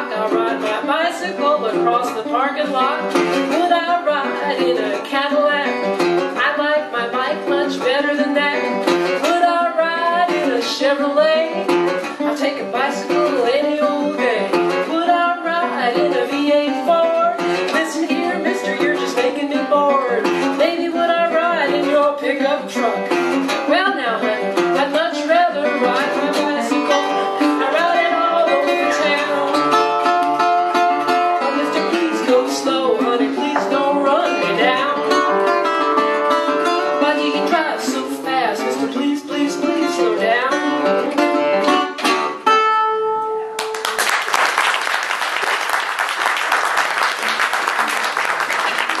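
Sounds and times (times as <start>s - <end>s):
resonator guitar fingerstyle blues: 0.0s - 44.0s
audience applause: 43.6s - 49.0s.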